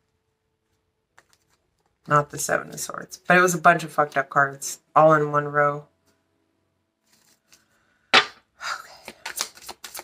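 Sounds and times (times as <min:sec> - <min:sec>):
cards being shuffled: 0:01.0 - 0:02.0, 0:07.0 - 0:08.4, 0:09.0 - 0:10.0.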